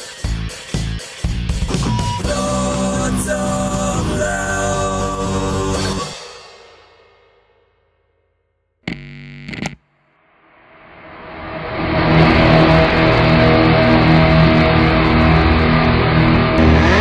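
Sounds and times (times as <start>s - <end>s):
distorted electric guitar chord: 8.9s - 10.0s.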